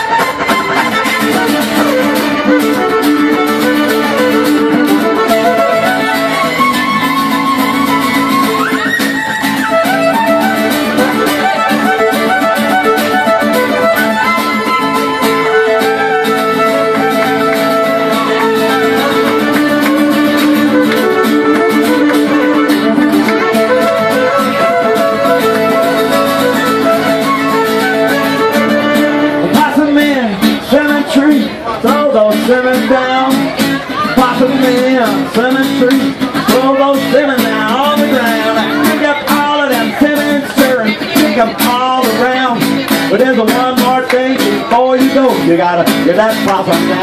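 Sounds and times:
fiddle melody: 0:00.0 - 0:47.0
strummed acoustic guitar: 0:00.0 - 0:47.0.

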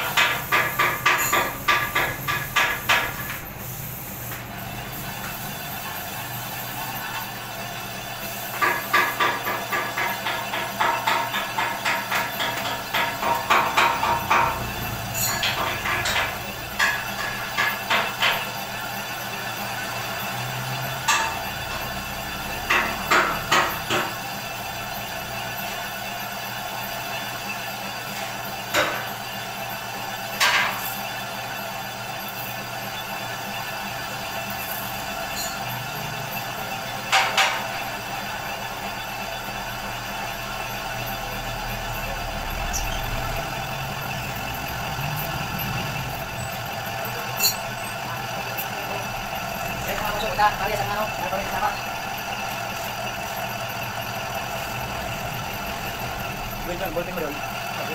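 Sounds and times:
metal lathe cutting: 0:00.0 - 0:57.9.

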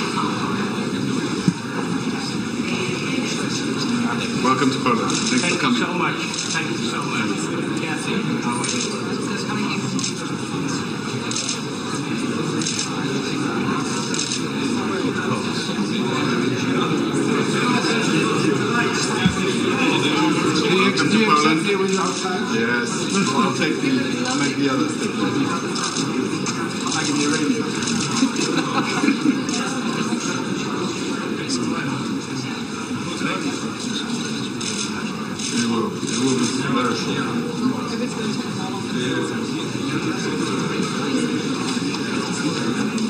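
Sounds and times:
murmur of voices: 0:00.0 - 0:43.0.

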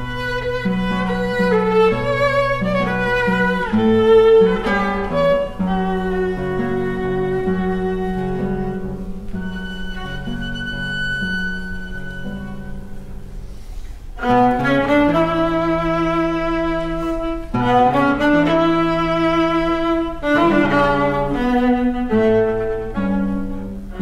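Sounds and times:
plucked guitar notes: 0:00.0 - 0:13.6
viola bowing a melody: 0:00.0 - 0:24.0.

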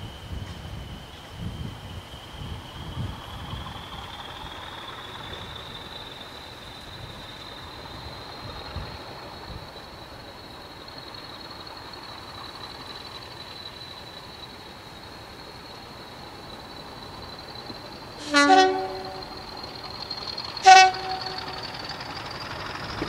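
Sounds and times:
diesel locomotive engine whine: 0:00.0 - 0:23.0.

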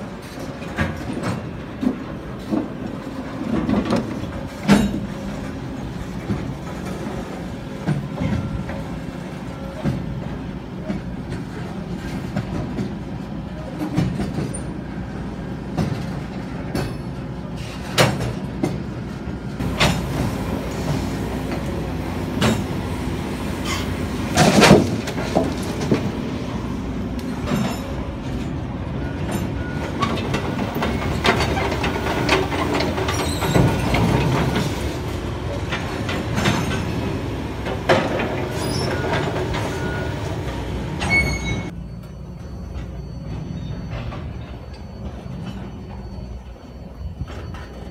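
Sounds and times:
train cars clanking: 0:00.0 - 0:47.9
train wheels rumbling on rail: 0:00.0 - 0:47.9
wheel squeals: 0:23.5 - 0:25.8, 0:27.3 - 0:47.9.

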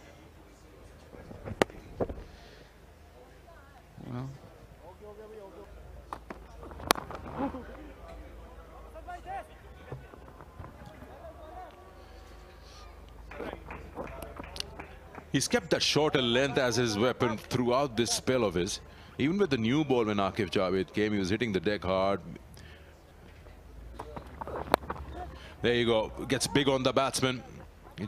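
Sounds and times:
faint indistinct voices: 0:00.0 - 0:21.3, 0:21.9 - 0:28.0.

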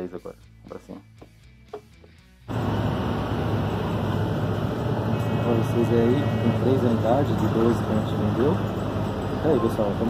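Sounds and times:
bus rumble and road noise: 0:02.5 - 0:10.0.

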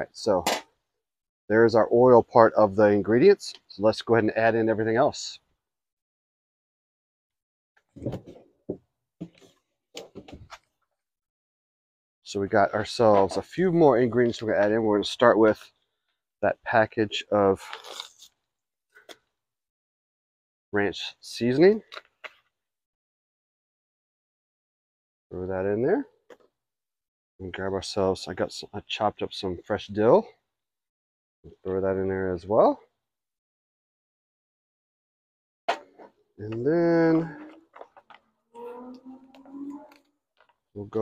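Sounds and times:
paper packet crinkling: 0:17.6 - 0:18.4.

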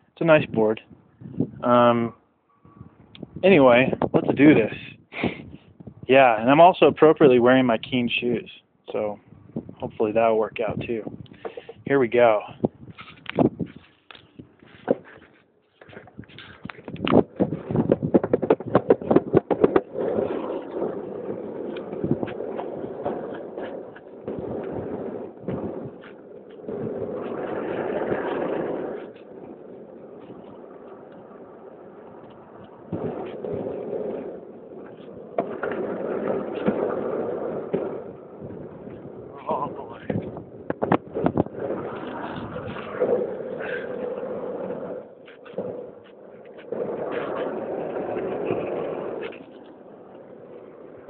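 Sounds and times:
longboard wheels rumbling on pavement: 0:09.4 - 0:51.0.

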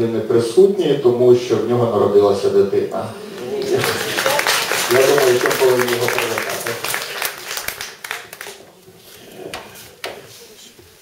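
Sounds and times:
audience clapping: 0:03.4 - 0:08.9.

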